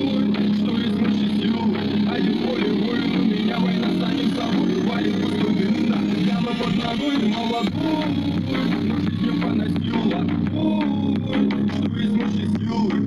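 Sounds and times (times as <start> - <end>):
bass-heavy song from speaker: 0.0 - 13.0
person singing: 0.0 - 13.0.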